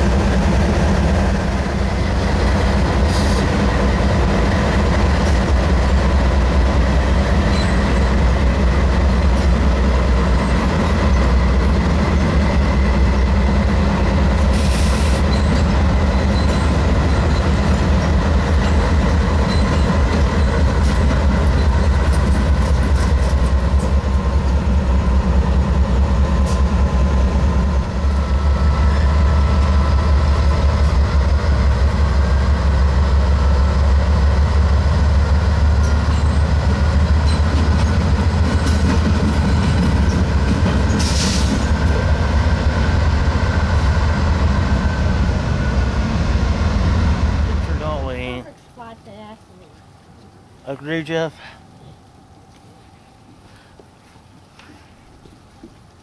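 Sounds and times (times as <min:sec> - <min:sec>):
locomotive engines rumbling: 0:00.0 - 0:56.0
wheels clicking over rail joints: 0:14.3 - 0:24.6, 0:35.7 - 0:42.1.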